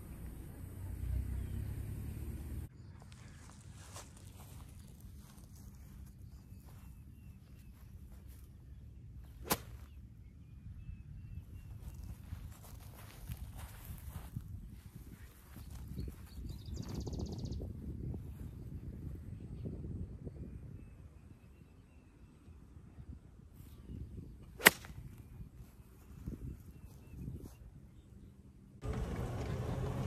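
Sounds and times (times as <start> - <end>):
golf club striking ball: 24.6 - 24.9.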